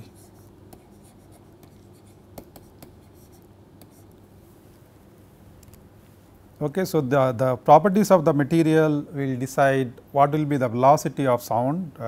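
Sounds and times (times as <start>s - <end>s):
low steady hum: 0.0s - 12.0s
stylus tapping on pen tablet: 1.6s - 4.0s.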